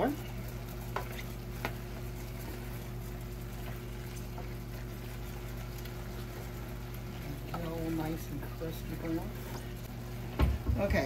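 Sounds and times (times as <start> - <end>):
meat sizzling in a saucepan: 0.0 - 11.0.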